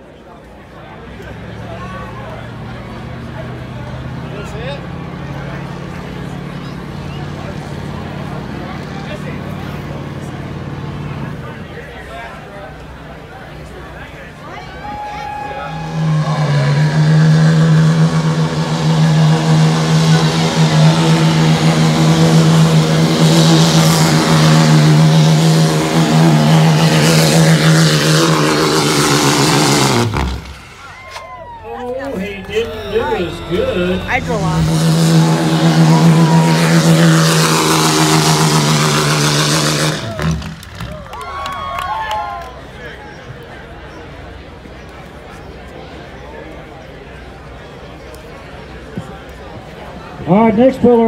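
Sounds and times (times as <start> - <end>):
diesel truck engine revving: 0.0 - 42.8.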